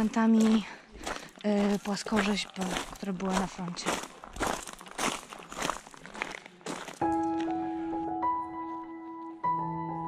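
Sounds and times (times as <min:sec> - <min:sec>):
footsteps on gravel: 0:00.0 - 0:07.6
piano music: 0:07.0 - 0:10.0.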